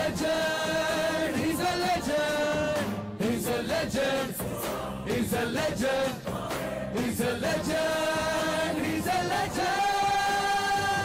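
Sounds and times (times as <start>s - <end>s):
choral singing over music: 0.0s - 11.0s.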